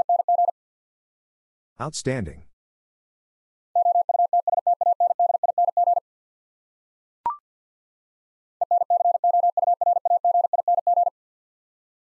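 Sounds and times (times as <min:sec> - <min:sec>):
morse code beeps: 0:00.0 - 0:00.5, 0:03.8 - 0:06.0, 0:08.6 - 0:11.1.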